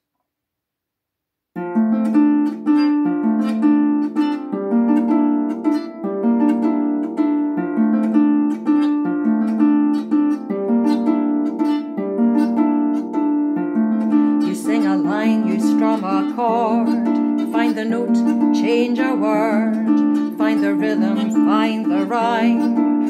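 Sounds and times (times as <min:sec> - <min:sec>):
harp plucked notes: 0:01.6 - 0:23.0
person singing: 0:14.0 - 0:23.0.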